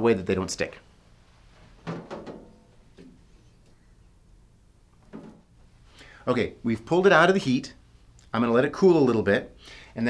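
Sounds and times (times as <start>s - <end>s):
soft handling knocks: 5.0s - 5.5s.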